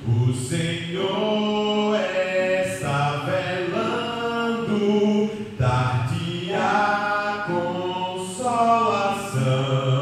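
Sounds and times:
man singing chant-like melody: 0.0 - 10.0.

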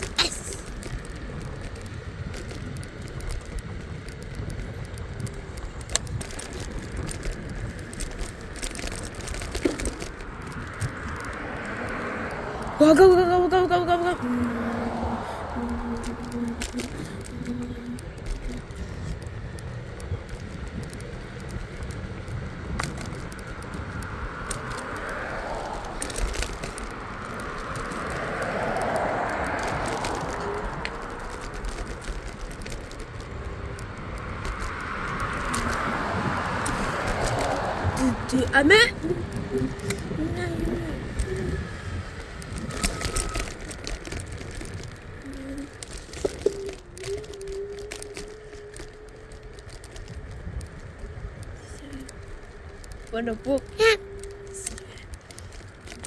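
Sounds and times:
cars passing: 0.0 - 56.0
scooter tyres on concrete: 0.0 - 56.0
wind: 0.0 - 56.0.

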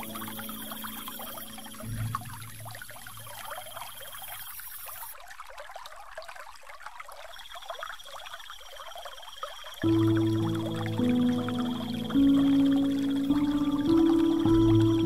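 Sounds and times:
soft music pad: 0.0 - 4.0, 9.8 - 15.0
trickling water: 0.0 - 15.0.

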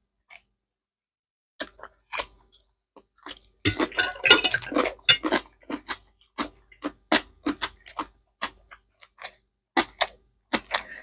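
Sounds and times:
crunching and smacking: 1.6 - 11.0
chewing and mouth clicks: 4.6 - 11.0.

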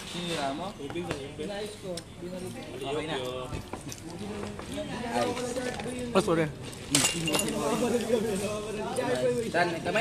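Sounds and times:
conversation: 0.0 - 10.0
tableware clinking: 6.9 - 7.9.

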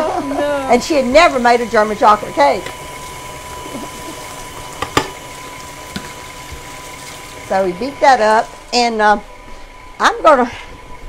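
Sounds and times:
electric stand mixer running: 0.0 - 10.2.

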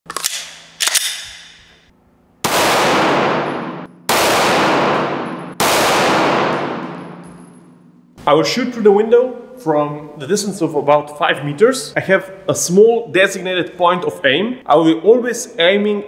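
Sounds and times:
gunshots: 2.4 - 7.4.

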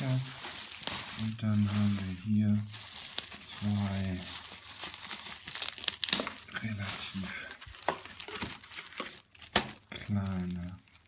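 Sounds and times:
bubble wrap and plastic crinkling: 0.0 - 11.0
sharp plastic crackles: 0.0 - 11.0.

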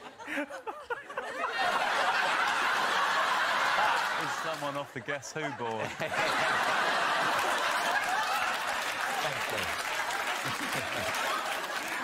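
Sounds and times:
audience laughing: 0.0 - 12.0
audience applauding: 1.6 - 4.9, 6.1 - 12.0.

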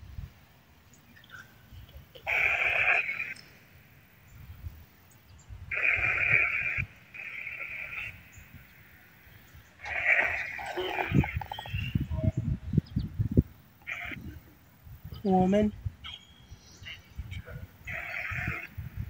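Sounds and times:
crackly electronic static bursts: 1.5 - 5.0, 5.6 - 12.1, 13.3 - 15.7, 16.8 - 19.0.

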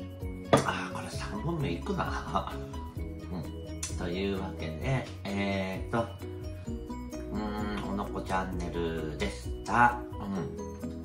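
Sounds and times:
background music: 0.0 - 11.0
person speaking: 7.2 - 10.6.

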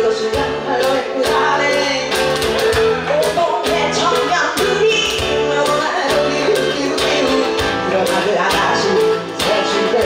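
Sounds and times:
guitars strummed: 0.0 - 10.0
woman singing: 0.0 - 10.0.

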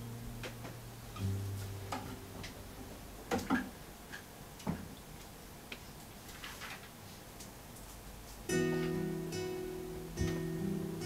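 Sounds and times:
classical guitar notes: 0.0 - 3.0, 8.5 - 11.0.

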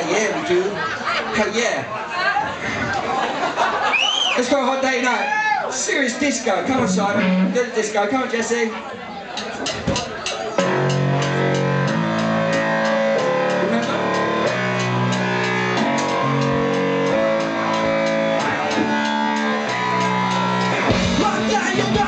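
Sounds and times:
live punk band playing: 6.7 - 7.9, 9.6 - 22.0.

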